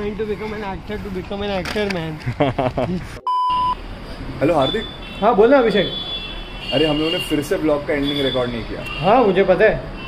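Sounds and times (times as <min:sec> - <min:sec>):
electronic beep: 0:03.3 - 0:03.8.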